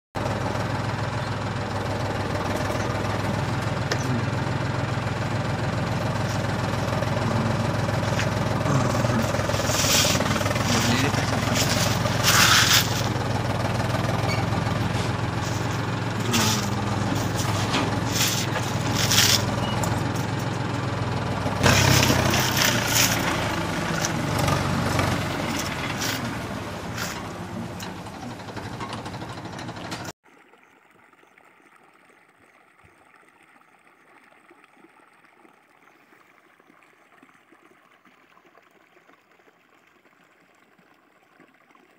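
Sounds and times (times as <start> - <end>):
toy tractor engine drone: 0.2 - 30.1
short noisy bursts: 6.1 - 13.3, 14.1 - 19.7.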